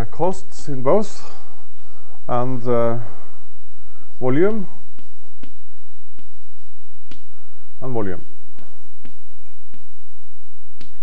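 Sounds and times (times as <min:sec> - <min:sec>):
room background hum: 0:00.0 - 0:11.0
chalk tapping on chalkboard: 0:04.3 - 0:07.3, 0:08.2 - 0:11.0.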